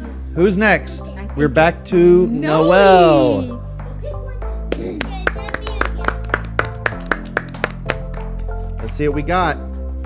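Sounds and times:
light background music: 0:00.0 - 0:10.0
people clapping: 0:04.6 - 0:08.6.

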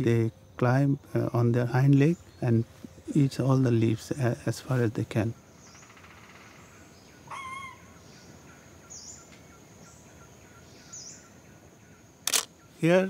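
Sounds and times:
faint steady high hiss: 0:00.0 - 0:13.0
short wavering animal call: 0:07.3 - 0:07.9.

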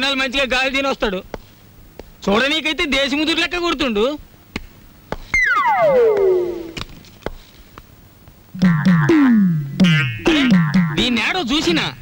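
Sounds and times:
synthesizer tone gliding down: 0:05.4 - 0:06.8.

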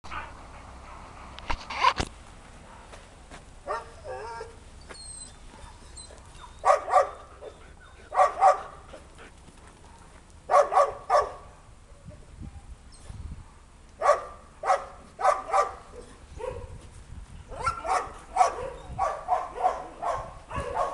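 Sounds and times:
dog barking: 0:03.7 - 0:03.9, 0:06.6 - 0:07.2, 0:08.1 - 0:08.8, 0:09.9 - 0:11.5, 0:14.0 - 0:16.8, 0:17.5 - 0:20.9.

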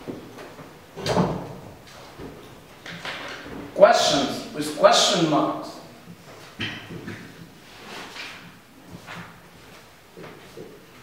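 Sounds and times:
soft rustles: 0:06.1 - 0:11.0.

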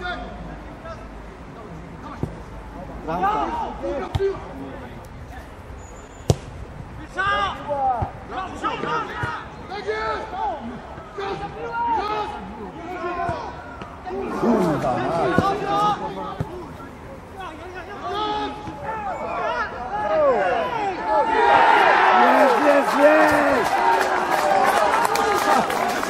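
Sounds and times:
players and spectators shouting: 0:03.0 - 0:04.4, 0:07.1 - 0:26.0
football being kicked: 0:06.3 - 0:06.6, 0:16.3 - 0:16.7.

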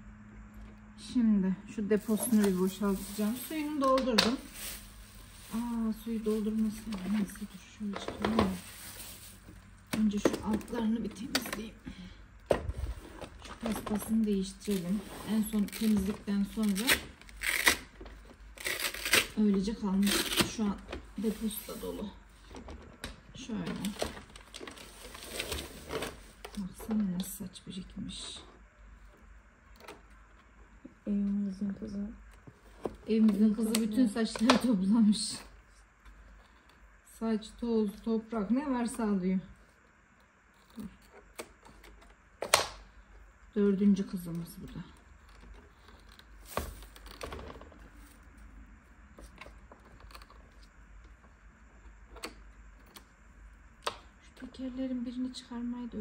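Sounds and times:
plastic bag rustling: 0:01.9 - 0:11.8, 0:12.6 - 0:22.5, 0:23.4 - 0:27.0
paper crinkling: 0:02.0 - 0:11.6, 0:12.8 - 0:22.1, 0:23.6 - 0:26.8
plastic scraping over paper: 0:02.0 - 0:27.1, 0:44.6 - 0:48.5.

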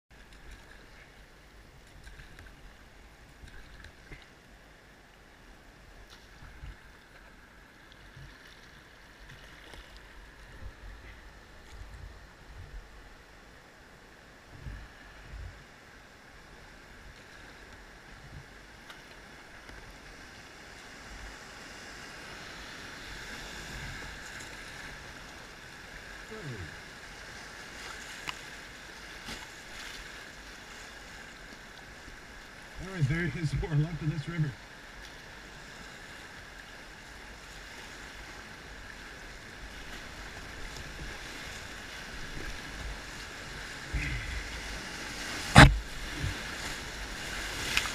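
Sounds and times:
river water rushing: 0:00.2 - 0:47.9
low thumps: 0:45.5 - 0:46.4.

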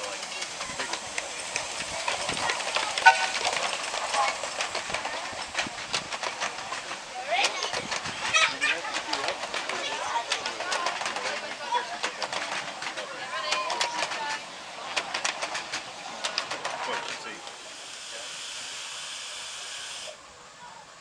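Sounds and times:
train wheels clicking over rail joints: 0:00.0 - 0:20.2
passengers' voices: 0:00.0 - 0:21.0.

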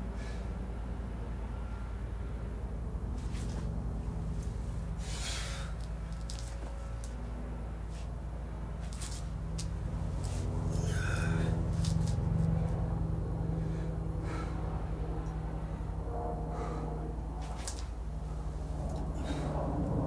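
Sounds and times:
man breathing sharply: 0:00.0 - 0:00.6, 0:05.0 - 0:05.9, 0:10.6 - 0:11.8, 0:13.4 - 0:14.9, 0:15.6 - 0:17.1, 0:19.0 - 0:19.8
steady low hum: 0:00.0 - 0:20.0.

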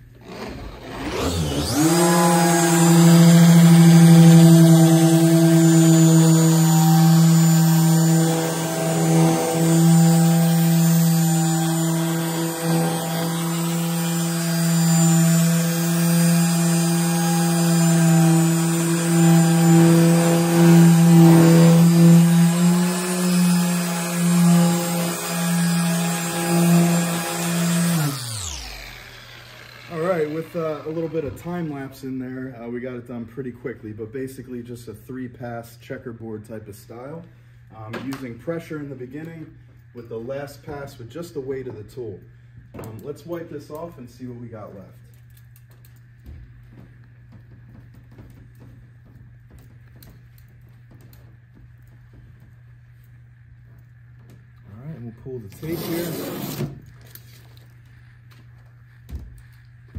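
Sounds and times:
orbital polisher motor humming: 0:00.2 - 0:31.7.

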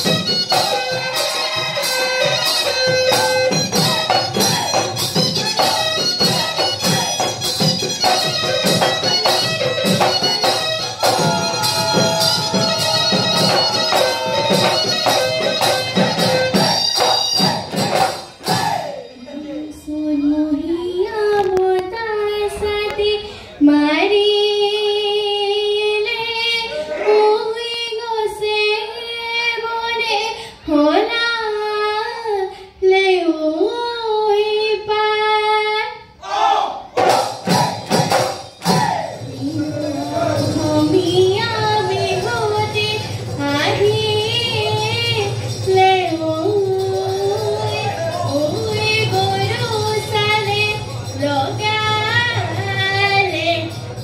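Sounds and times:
woman singing into microphone: 0:18.6 - 0:36.0, 0:39.2 - 0:53.9.

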